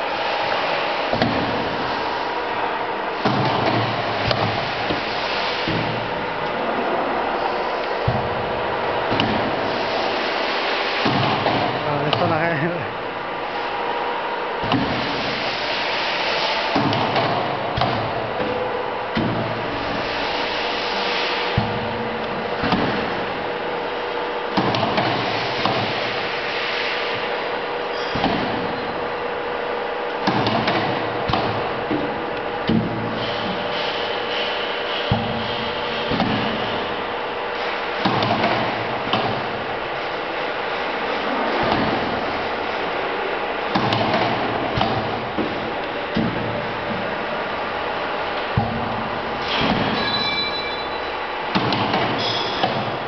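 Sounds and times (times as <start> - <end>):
screen printer machine running: 0.0 - 53.0
mechanical knocks and clunks: 1.1 - 1.8, 3.2 - 6.6, 7.8 - 9.6, 16.7 - 20.0, 21.4 - 23.4, 24.5 - 26.2, 28.0 - 29.0, 30.1 - 37.0, 38.0 - 39.6, 41.5 - 42.5, 43.6 - 47.3, 48.3 - 50.6, 51.5 - 53.0
screen printer whooshing hiss: 3.8 - 8.0, 9.4 - 11.8, 14.9 - 17.2, 19.5 - 21.9, 33.1 - 38.9
sharp mechanical knocks: 9.1 - 9.6, 10.9 - 12.4, 30.2 - 36.8, 38.0 - 39.5, 43.7 - 47.1, 51.5 - 53.0.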